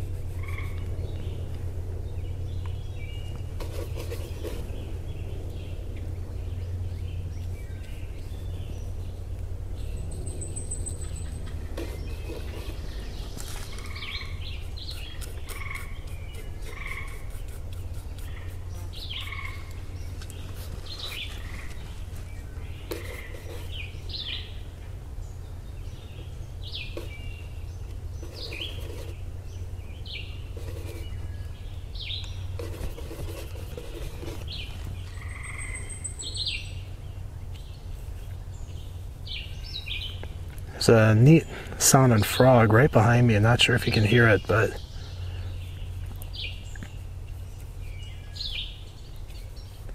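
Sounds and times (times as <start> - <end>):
birds chirping and whistling: 0.0 - 24.7, 25.3 - 42.6, 43.6 - 49.8
steady low hum: 0.0 - 49.9
frog calling: 0.4 - 0.8, 15.4 - 16.0, 16.6 - 17.2, 19.2 - 19.7.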